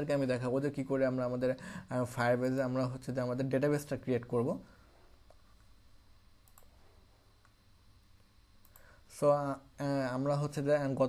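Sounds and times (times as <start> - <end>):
computer mouse clicks: 6.4 - 6.8, 8.6 - 8.9.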